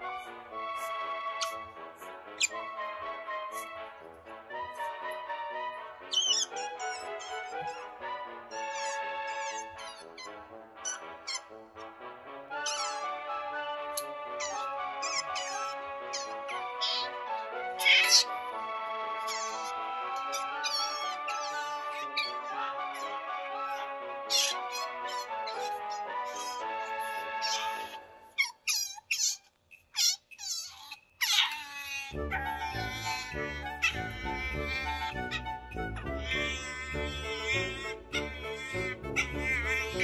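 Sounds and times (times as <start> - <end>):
background music with held notes: 0.0 - 28.5, 31.4 - 40.0
otter squeaking chirps: 0.8 - 1.7, 2.4 - 2.7, 6.1 - 11.6, 12.6 - 13.4, 14.0 - 40.0.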